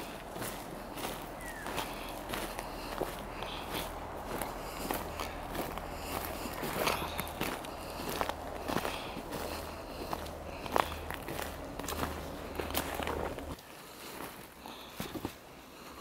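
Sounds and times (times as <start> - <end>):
footsteps on forest litter: 0.0 - 16.0.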